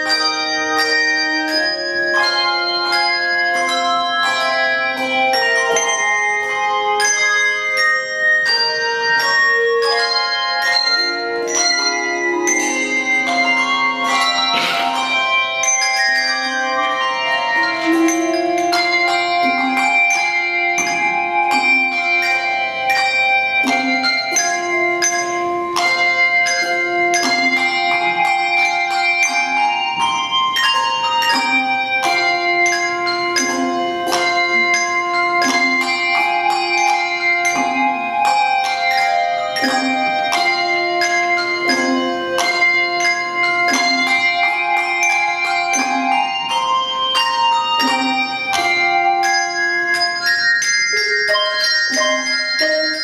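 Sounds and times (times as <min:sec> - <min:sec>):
handbell choir playing: 0:00.0 - 0:53.0.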